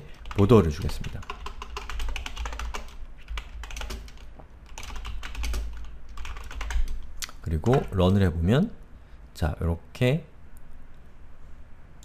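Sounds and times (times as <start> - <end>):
typing on computer keyboard: 0.1 - 7.0, 7.6 - 8.0.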